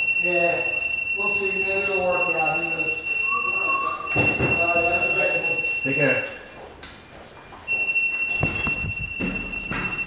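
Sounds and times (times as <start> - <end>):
high-pitched buzzer tone: 0.0 - 6.5.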